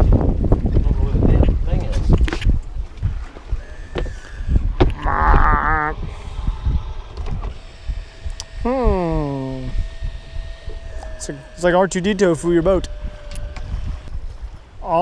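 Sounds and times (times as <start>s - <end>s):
wind and water rumble: 0.0s - 15.0s
thin electric whine: 3.5s - 15.0s
electronic warbles: 4.9s - 6.0s
falling electronic tone: 5.0s - 6.0s.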